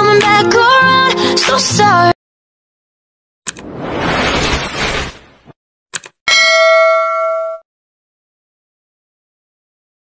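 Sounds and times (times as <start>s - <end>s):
bell ding: 6.3s - 7.6s.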